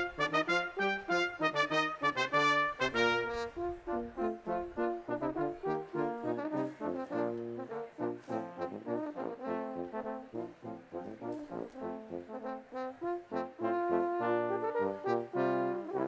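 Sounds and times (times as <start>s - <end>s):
brass ensemble playing: 0.0s - 16.0s.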